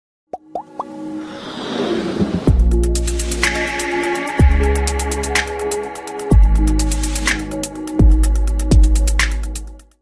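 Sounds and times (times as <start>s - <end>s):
quick rising pops: 0.6s - 2.6s
building intro music: 0.6s - 9.8s.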